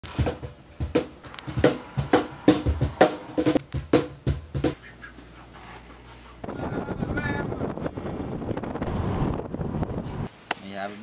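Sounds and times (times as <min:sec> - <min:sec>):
cajon bass strokes and slaps: 0:00.0 - 0:04.8.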